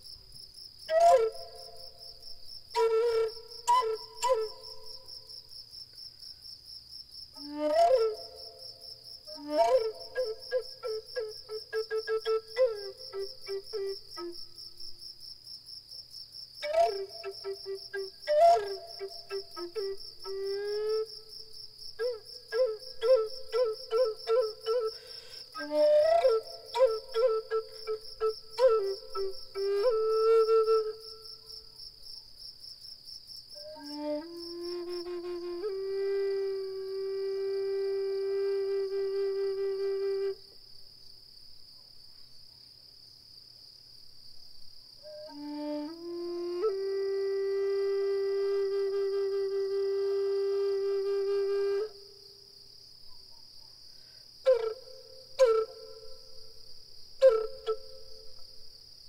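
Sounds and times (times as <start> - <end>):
cricket chirping: 0.0 - 59.0
flute notes: 0.9 - 5.1, 7.4 - 8.7, 9.3 - 14.6, 16.6 - 21.4, 22.0 - 31.5, 33.6 - 40.5, 45.0 - 52.4, 54.4 - 58.6.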